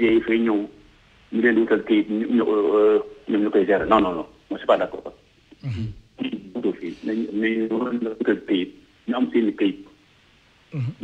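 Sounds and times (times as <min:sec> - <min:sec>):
person talking over telephone line: 0:01.4 - 0:05.1.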